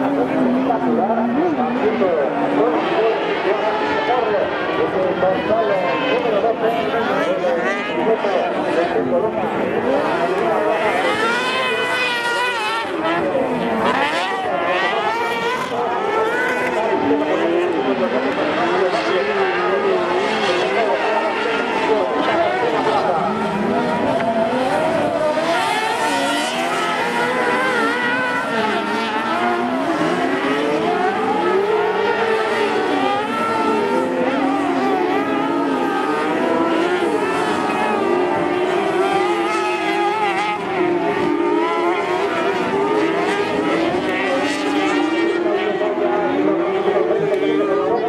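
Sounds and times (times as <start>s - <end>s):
motorcycle engines racing: 0.0s - 48.0s.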